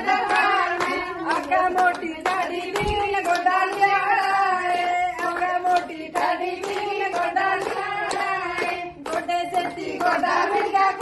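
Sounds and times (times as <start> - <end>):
hands clapping in time: 0.0 - 11.0
women singing together: 0.0 - 11.0.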